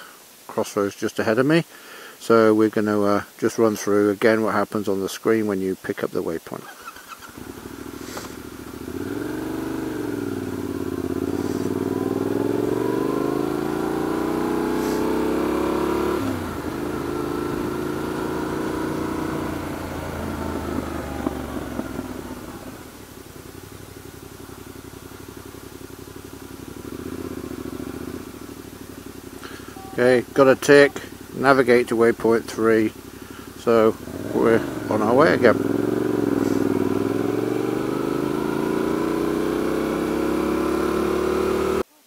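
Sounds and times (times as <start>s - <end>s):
motorcycle engine revving: 6.8s - 41.9s.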